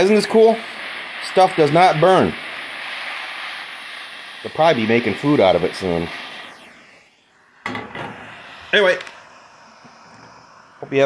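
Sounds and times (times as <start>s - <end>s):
hand torch flame hissing: 0.0s - 11.0s
torch knock and clatter: 7.6s - 9.2s.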